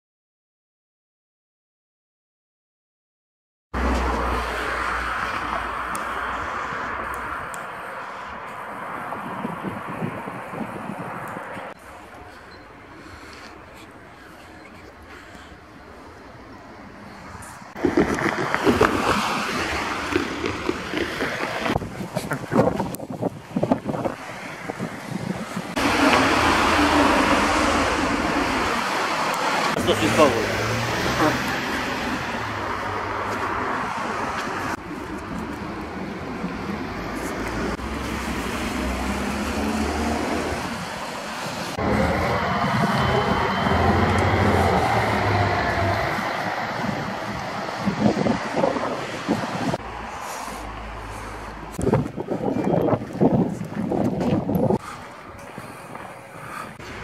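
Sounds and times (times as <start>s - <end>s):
passing road traffic: 3.8s - 57.0s
wind buffeting microphone: 5.2s - 57.0s
faint voices: 11.4s - 17.7s
car driving past: 25.7s - 34.8s, 36.8s - 40.9s, 41.7s - 48.1s.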